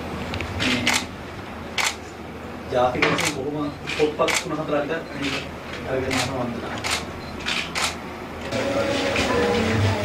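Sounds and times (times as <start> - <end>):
camera shutter click: 1.8 - 2.0, 6.1 - 8.0.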